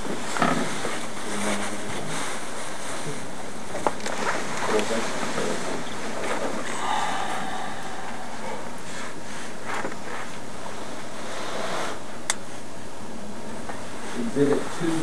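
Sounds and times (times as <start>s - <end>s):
room tone hiss: 0.0s - 15.0s.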